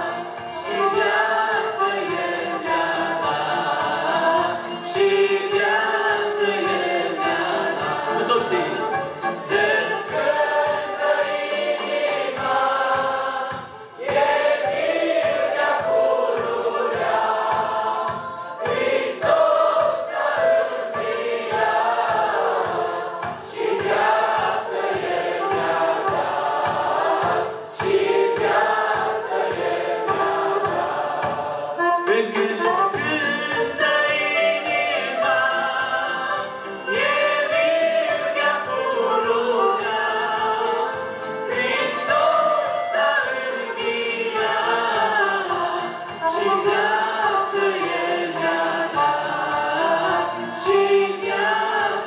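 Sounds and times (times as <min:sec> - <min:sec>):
choir singing a gospel hymn: 0:00.0 - 0:52.0
instrumental accompaniment with beat: 0:00.0 - 0:52.0.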